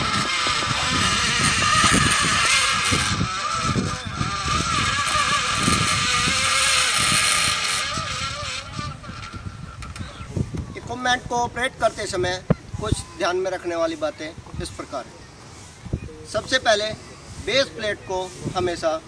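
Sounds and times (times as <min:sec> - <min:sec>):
winch motor whining: 0:00.0 - 0:10.6.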